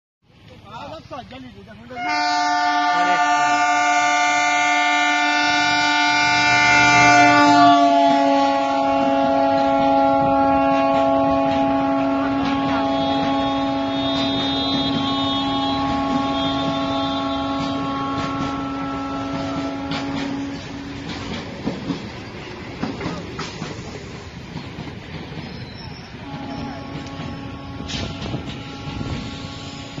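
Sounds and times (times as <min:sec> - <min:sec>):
diesel locomotive horn: 0:02.0 - 0:21.2, 0:26.1 - 0:30.0
train wheels clattering over rail joints: 0:09.4 - 0:30.0.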